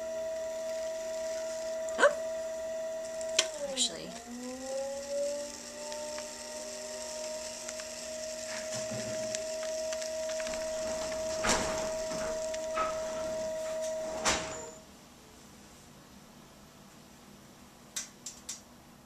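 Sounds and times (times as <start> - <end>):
pottery wheel motor whine: 0.0 - 14.9.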